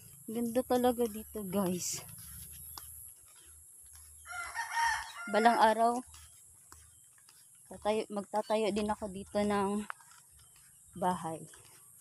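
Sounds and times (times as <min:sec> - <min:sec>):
rooster crowing: 0:04.2 - 0:05.7.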